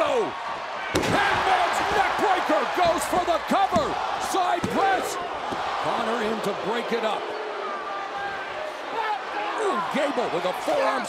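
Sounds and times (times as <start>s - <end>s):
arena crowd voices: 0.0s - 11.0s.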